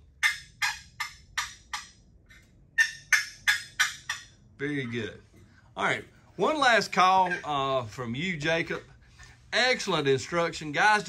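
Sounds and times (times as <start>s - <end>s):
wooden turkey call clucking: 0.0s - 4.6s, 7.0s - 7.6s.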